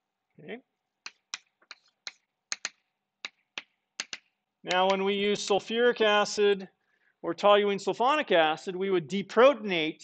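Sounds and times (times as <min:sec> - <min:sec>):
chalk tapping on a blackboard: 0:01.0 - 0:05.0.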